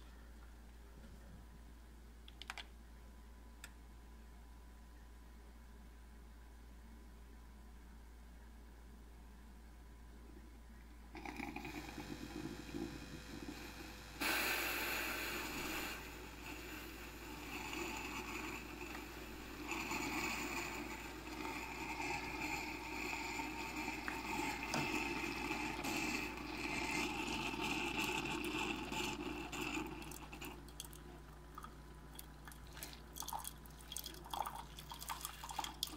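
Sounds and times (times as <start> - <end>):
coffee pouring into cup: 11.2 - 13.9, 15.4 - 35.9
coffee maker pump running: 11.2 - 35.9.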